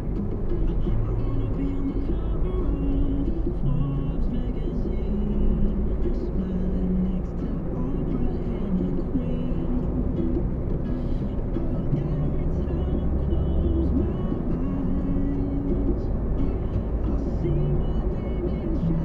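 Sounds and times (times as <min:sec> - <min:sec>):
car road and engine rumble: 0:00.0 - 0:19.0
music playing: 0:00.0 - 0:19.0.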